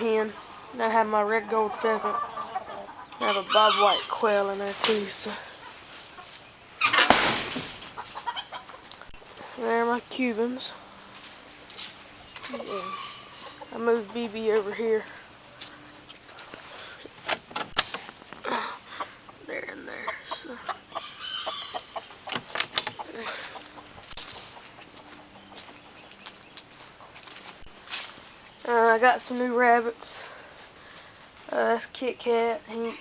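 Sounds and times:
chickens clucking: 0.0 - 17.3, 18.0 - 33.0.

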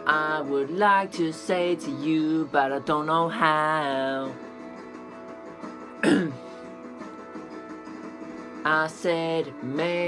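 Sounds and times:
person singing: 0.0 - 4.4, 8.6 - 10.0
backing music: 0.0 - 10.0
man clearing his throat: 6.0 - 6.6.

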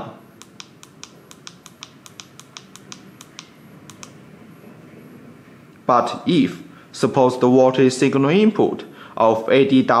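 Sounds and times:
keypad button clicks: 0.4 - 4.2.

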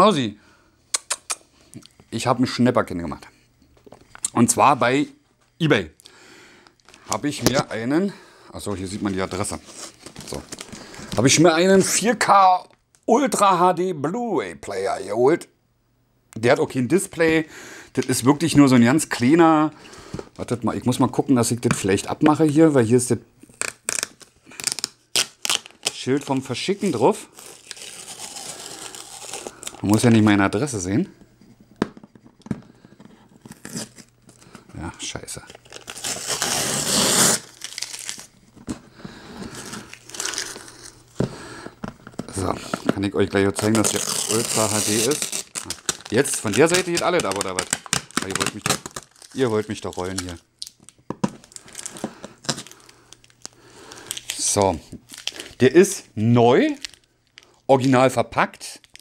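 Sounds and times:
paper label tearing and crumpling: 23.5 - 30.1, 35.4 - 38.3, 43.6 - 50.4.

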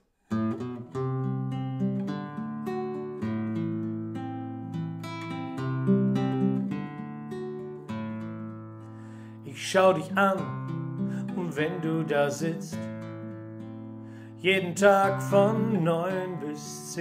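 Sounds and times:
classical guitar picking: 0.3 - 17.0.

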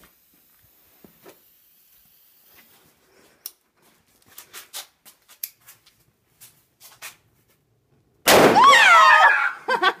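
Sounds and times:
balloon explosion bang: 8.3 - 8.7
people laughing: 9.5 - 10.0.

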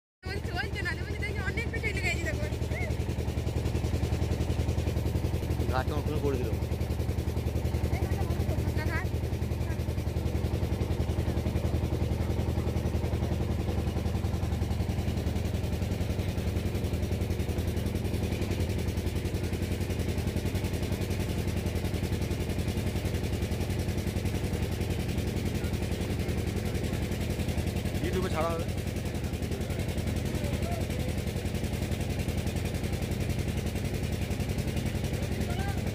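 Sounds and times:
boat engine chugging: 0.2 - 35.9.

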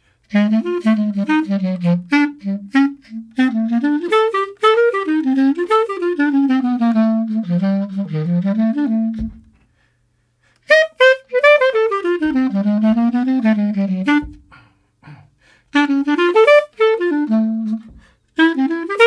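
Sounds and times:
solo clarinet jazz line: 0.1 - 9.9, 10.5 - 19.0.

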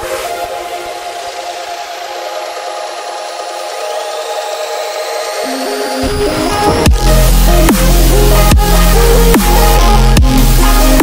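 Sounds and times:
rising synth sweep: 3.7 - 10.2
sustained synth chords: 4.4 - 11.0.

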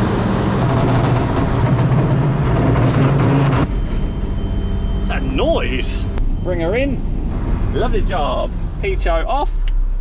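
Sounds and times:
diesel lorry engine running: 0.0 - 10.0.

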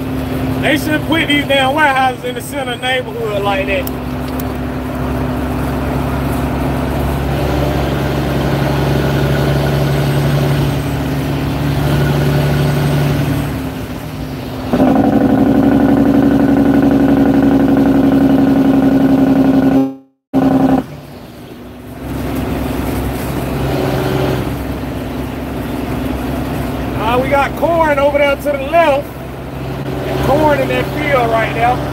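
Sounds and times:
truck engine running: 0.0 - 31.9.

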